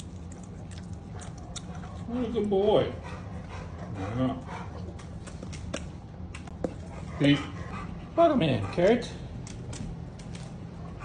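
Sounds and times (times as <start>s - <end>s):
dog chewing a treat: 0.0s - 11.0s.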